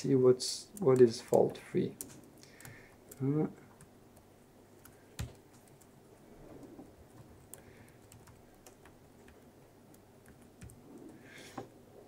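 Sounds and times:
laptop keystrokes: 0:00.7 - 0:03.2, 0:03.8 - 0:05.9, 0:06.6 - 0:11.2.

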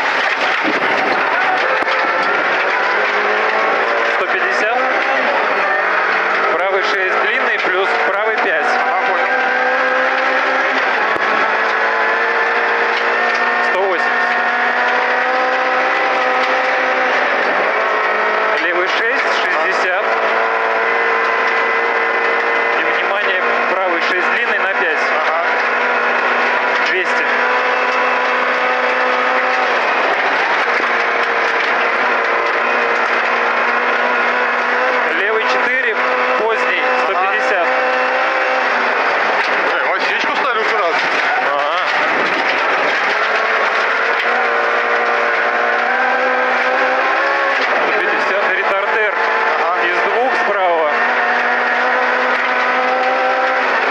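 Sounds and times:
car engine at high revs: 0:00.0 - 0:53.9
tyres on gravel road: 0:00.0 - 0:53.9.

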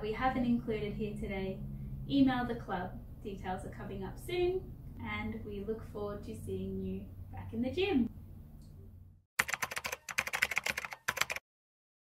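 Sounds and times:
computer keyboard typing: 0:09.4 - 0:11.4.

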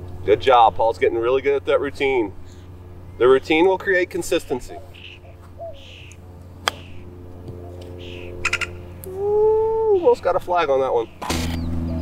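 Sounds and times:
low steady hum: 0:00.0 - 0:12.0
golf club striking ball: 0:06.1 - 0:09.1.

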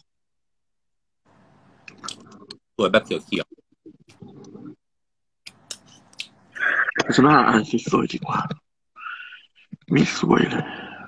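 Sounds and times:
mouth clicks: 0:05.4 - 0:07.1.

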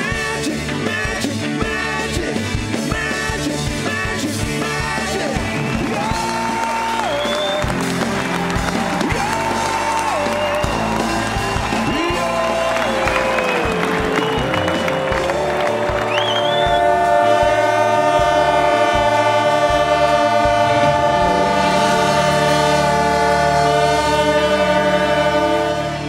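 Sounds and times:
pulsing bass line: 0:00.0 - 0:26.0
held horn-like chord: 0:05.6 - 0:26.0.

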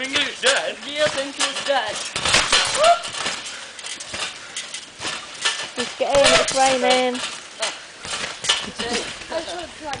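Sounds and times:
person landing on wet trampoline: 0:00.0 - 0:10.0.

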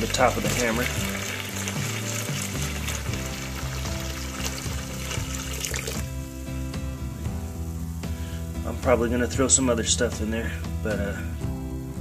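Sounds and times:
liquid pouring into plastic tub: 0:00.0 - 0:06.2
background music: 0:00.0 - 0:12.0.

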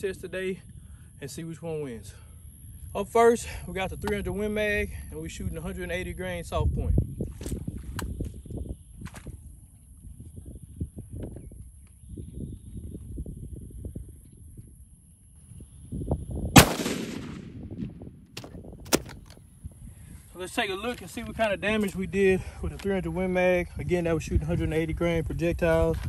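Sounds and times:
rifle shot with echo: 0:16.5 - 0:19.2
low rumble: 0:16.6 - 0:18.4
sharp clicks: 0:16.6 - 0:19.4.

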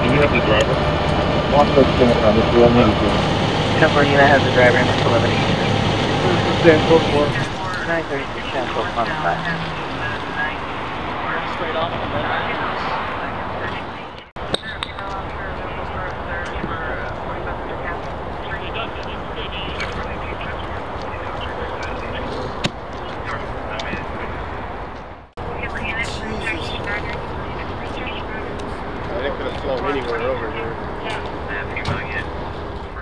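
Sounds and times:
diesel engine idling: 0:00.0 - 0:12.6
faint voices: 0:00.0 - 0:24.7, 0:25.4 - 0:33.0.

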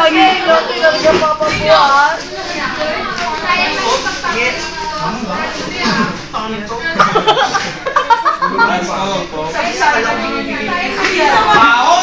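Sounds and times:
young people chattering: 0:00.0 - 0:12.0.

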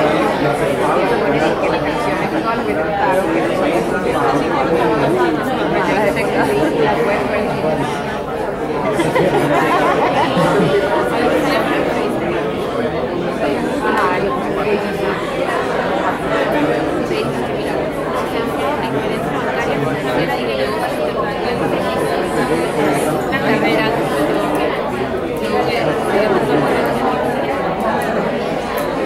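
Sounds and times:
babble of voices: 0:00.0 - 0:29.0.

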